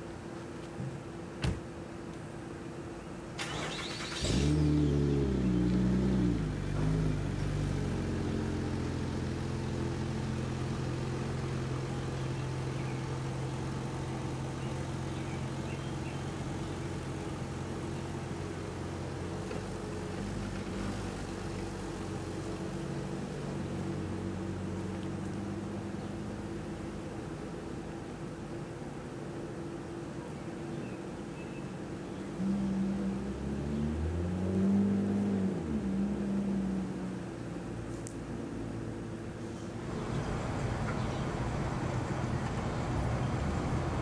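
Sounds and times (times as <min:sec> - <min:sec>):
car starter burst: 0:03.4 - 0:04.9
car engine revving and running: 0:04.1 - 0:28.6, 0:32.4 - 0:44.0.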